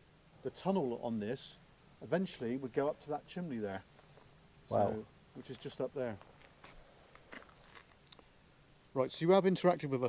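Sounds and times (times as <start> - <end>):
faint clicks and rustles: 5.0 - 8.4.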